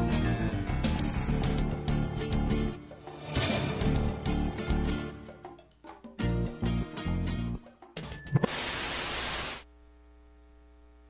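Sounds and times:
faint steady hum: 8.1 - 11.0
television static hiss: 8.1 - 11.0.

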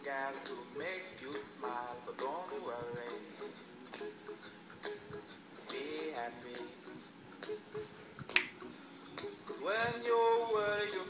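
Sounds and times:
faint music: 0.0 - 11.0
finger snap: 8.2 - 8.6.

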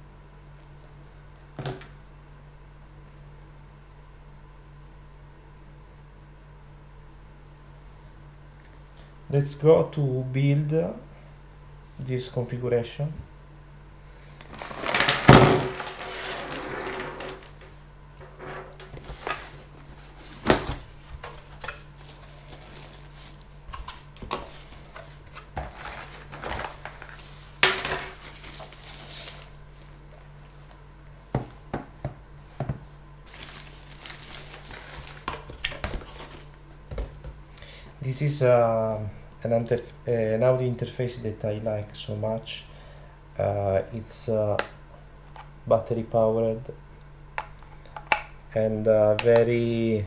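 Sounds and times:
steady low hum: 0.0 - 50.0
handling noise on wooden table: 14.5 - 19.6
clattering and rustling: 14.5 - 29.5
rustling: 32.9 - 35.3.

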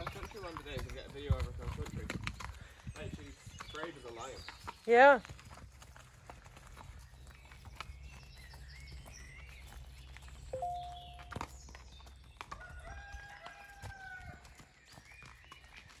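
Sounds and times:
birds singing: 0.0 - 16.0
horse hooves on gravel: 0.0 - 16.0
rooster crowing: 12.6 - 14.4.

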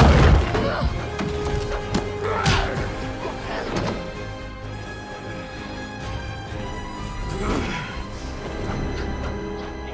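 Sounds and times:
orchestral film score: 0.0 - 9.9.

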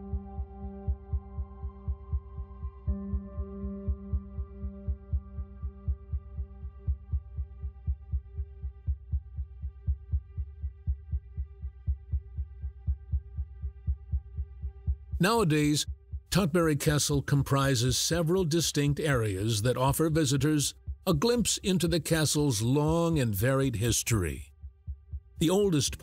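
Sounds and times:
low heartbeat-like pulse: 0.0 - 26.0.

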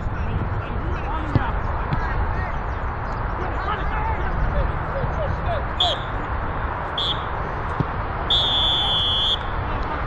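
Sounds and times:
football being kicked: 1.3 - 2.1.

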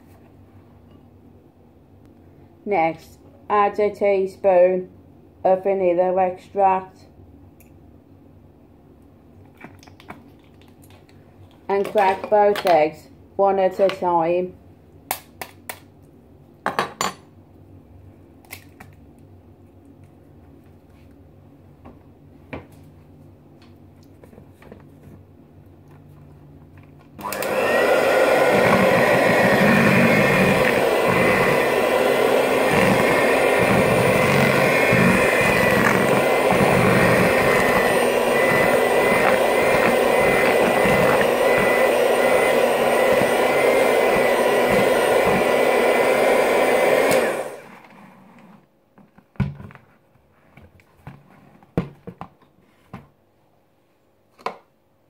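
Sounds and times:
electric hand mixer running: 27.2 - 47.8.

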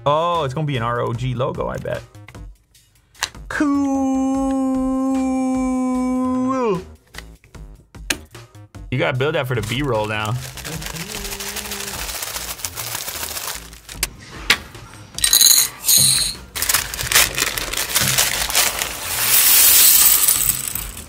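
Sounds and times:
plastic bag crinkling: 9.6 - 14.1, 15.4 - 21.0
plastic bricks clattering on table: 15.2 - 21.0.

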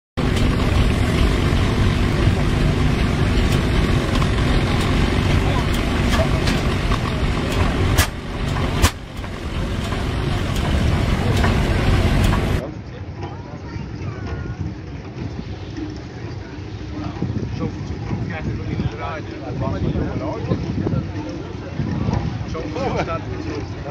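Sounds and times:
faint voices: 0.2 - 23.9
tractor engine low rumble: 0.2 - 23.9
sharp cracks: 7.5 - 9.3.

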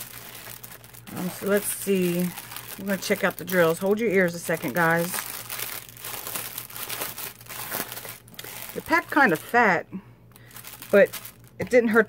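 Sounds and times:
plastic bag crinkling and rustling: 0.0 - 12.0.

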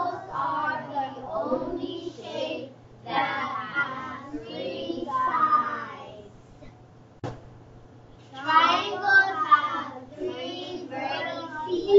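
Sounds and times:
child singing: 0.0 - 6.2, 8.4 - 11.9.

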